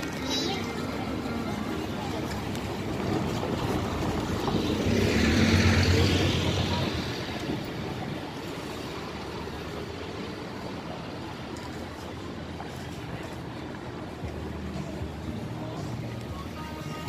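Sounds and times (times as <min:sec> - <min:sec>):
bus engine rumble: 0:00.0 - 0:17.0.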